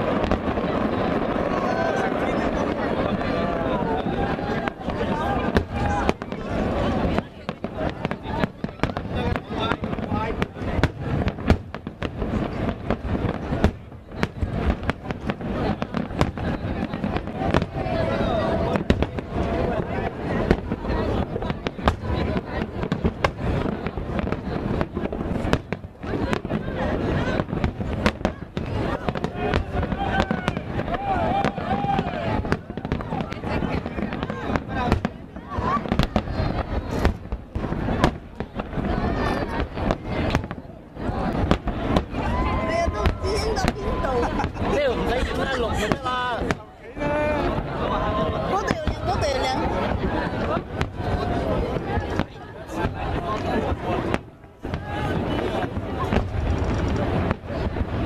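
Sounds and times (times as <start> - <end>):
fireworks bursting: 0.0 - 58.0.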